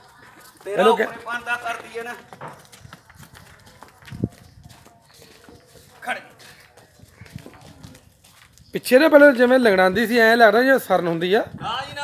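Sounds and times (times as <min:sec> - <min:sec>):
hooves stepping on dirt: 0:00.0 - 0:09.8.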